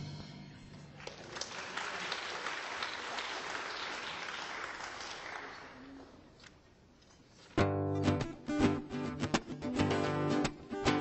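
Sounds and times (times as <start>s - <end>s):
audience applauding: 1.0s - 6.2s.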